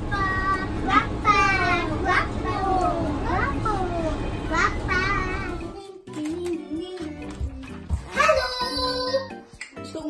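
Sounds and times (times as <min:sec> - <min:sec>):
bus engine rumble: 0:00.0 - 0:05.7.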